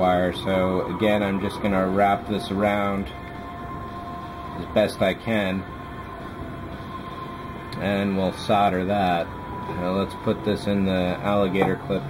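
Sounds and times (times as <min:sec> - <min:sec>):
background hum and hiss: 0:00.0 - 0:12.0
person speaking: 0:11.4 - 0:12.0.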